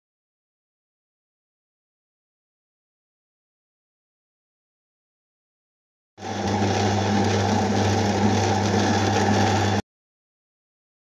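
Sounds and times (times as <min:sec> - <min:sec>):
mixer grinder motor hum: 0:06.2 - 0:09.8.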